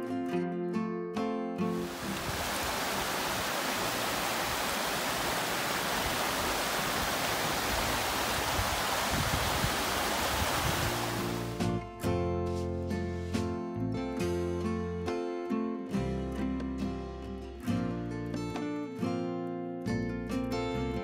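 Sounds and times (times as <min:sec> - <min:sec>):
acoustic guitar music: 0:00.0 - 0:02.2, 0:11.0 - 0:21.0
stream rushing over stones: 0:01.8 - 0:11.6.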